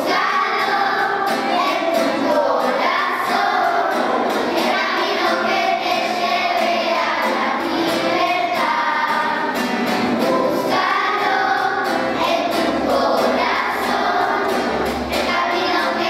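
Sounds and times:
children's choir singing: 0.0s - 16.0s.

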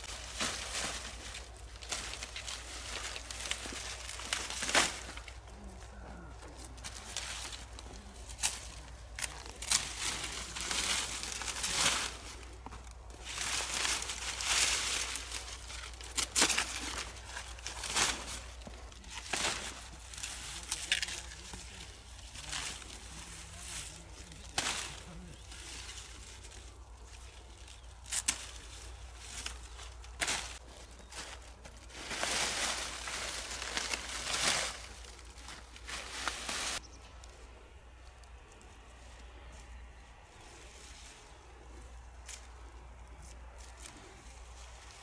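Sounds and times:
dry corn stalks crackling: 0.0s - 45.0s.

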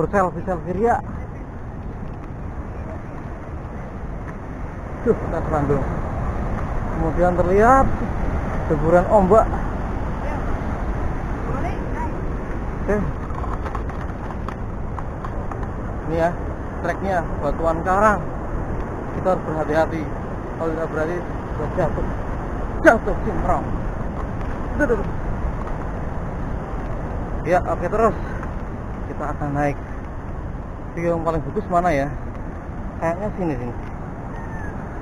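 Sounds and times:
ocean waves crashing: 0.0s - 35.0s
wind buffeting microphone: 0.0s - 35.0s.

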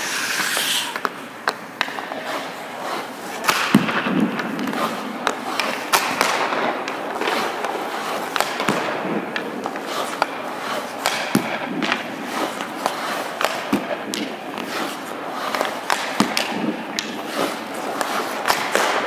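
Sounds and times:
skate blades scraping ice: 0.0s - 19.0s
stick striking puck: 0.0s - 19.0s.

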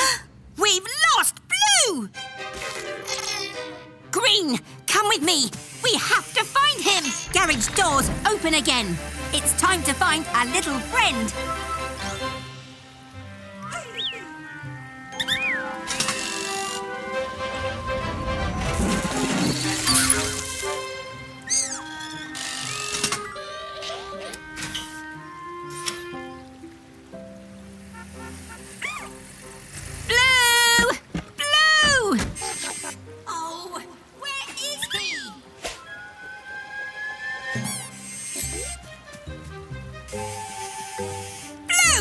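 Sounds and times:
cartoon background music: 0.9s - 42.0s
whistle-like pitch glides: 40.2s - 41.6s.

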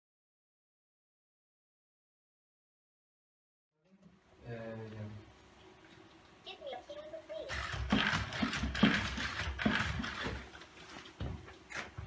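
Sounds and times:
robot joint motors whirring: 7.5s - 10.6s
robot feet tapping on floor: 7.5s - 12.0s.

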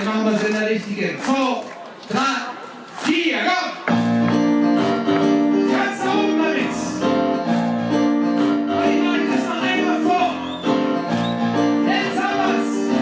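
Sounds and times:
keyboard piano chords: 3.9s - 13.0s
person singing: 4.9s - 7.4s, 8.0s - 10.5s, 11.6s - 13.0s.

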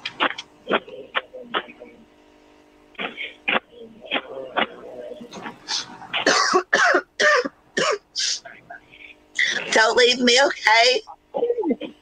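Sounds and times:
person coughing: 3.0s - 8.4s.

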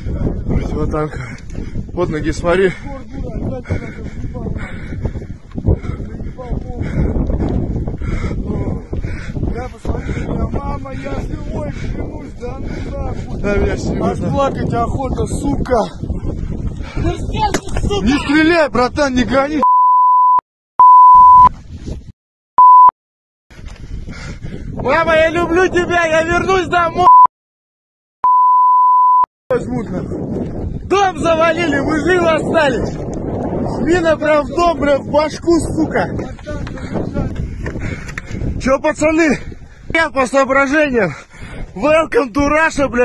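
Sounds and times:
wind rumble: 0.0s - 19.6s, 23.5s - 27.1s, 29.5s - 43.0s
censor bleep: 19.6s - 21.5s, 22.6s - 22.9s, 27.0s - 27.3s, 28.2s - 29.3s.

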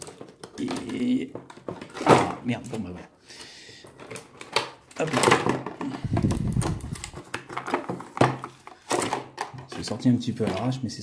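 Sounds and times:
cardboard and plastic packaging crackling: 0.0s - 3.0s, 3.8s - 11.0s.

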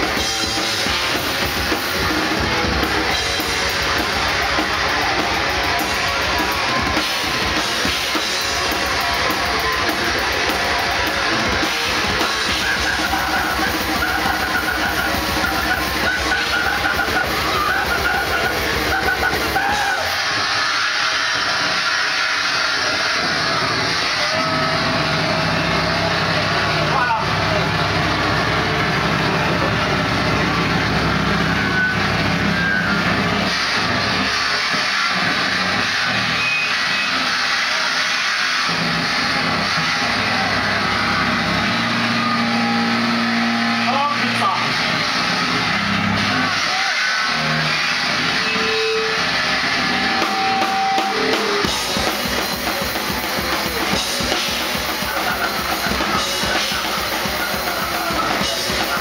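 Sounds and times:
grindcore band playing: 0.0s - 59.0s
droning amplifier noise: 21.3s - 34.6s.

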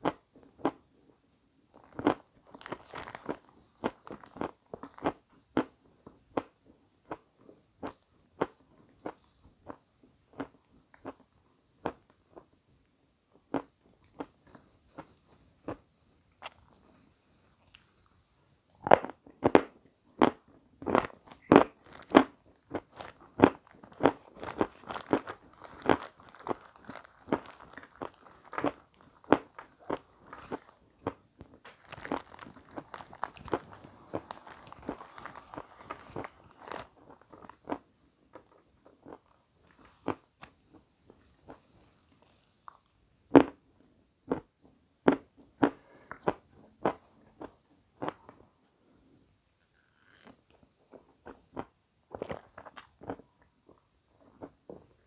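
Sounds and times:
crunching and chewing meringue: 0.0s - 12.6s, 13.4s - 48.5s, 49.6s - 55.0s.

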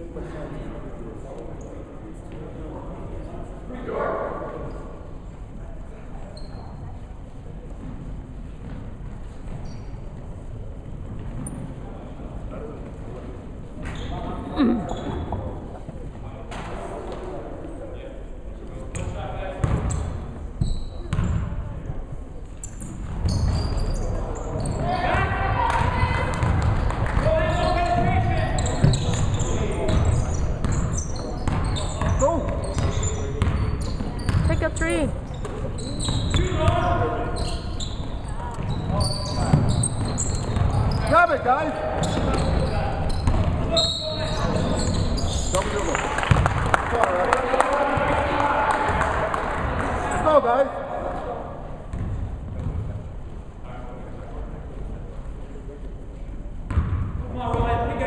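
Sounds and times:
sneaker squeaks: 6.2s - 7.0s, 8.6s - 10.3s, 11.2s - 11.8s, 13.8s - 15.5s, 18.9s - 21.8s, 22.6s - 46.4s, 51.9s - 52.8s, 56.7s - 57.8s
basketball bouncing on wooden floor: 32.7s - 34.5s.

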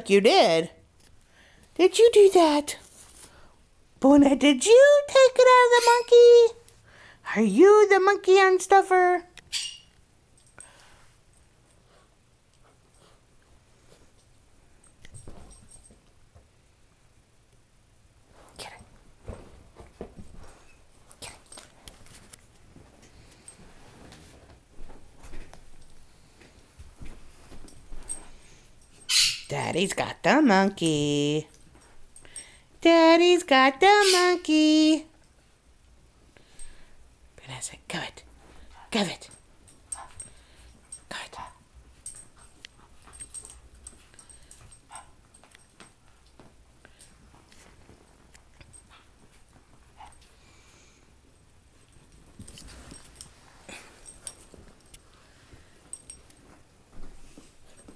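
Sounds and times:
puppies scuffling on carpet: 18.3s - 29.0s, 41.8s - 50.3s, 51.8s - 57.9s
small clicks and rustles: 18.3s - 29.1s, 38.3s - 50.4s, 51.3s - 57.9s.

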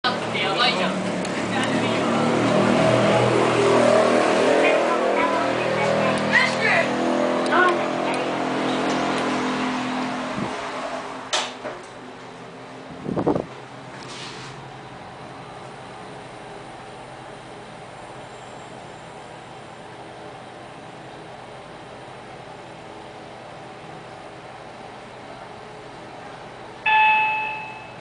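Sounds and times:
voices: 0.0s - 9.3s
road traffic: 0.0s - 28.0s
vehicle engine drone: 0.0s - 28.0s
short tone: 26.9s - 28.0s.

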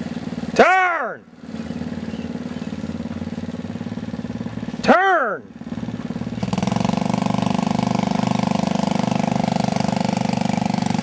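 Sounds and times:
atv engine running steadily: 0.0s - 11.0s.

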